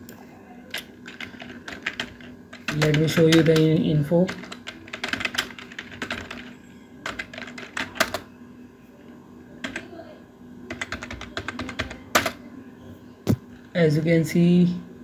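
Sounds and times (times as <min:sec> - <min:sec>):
typing on computer keyboard: 0:00.7 - 0:08.2, 0:09.6 - 0:09.9, 0:10.7 - 0:12.4.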